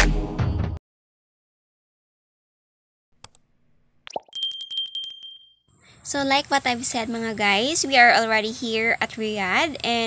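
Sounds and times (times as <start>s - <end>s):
high notification bell ding: 4.2s - 5.6s.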